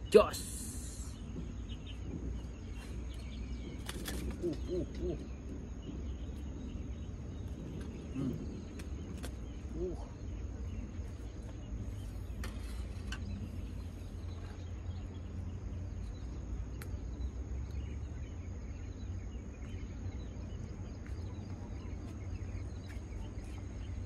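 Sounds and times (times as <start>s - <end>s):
faint chirps: 0.0s - 24.0s
steady low rumble: 0.0s - 24.0s.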